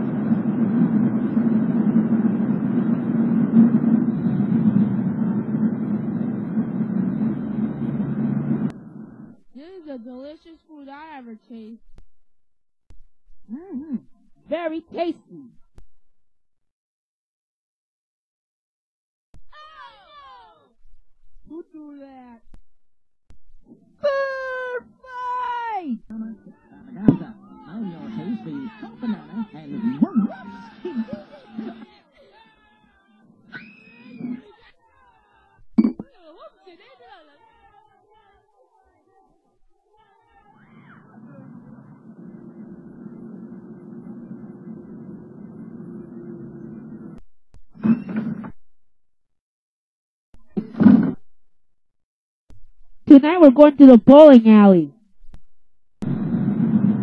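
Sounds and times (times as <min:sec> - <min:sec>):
muffled low rumble: 0:00.0 - 0:09.5, 0:56.0 - 0:57.0.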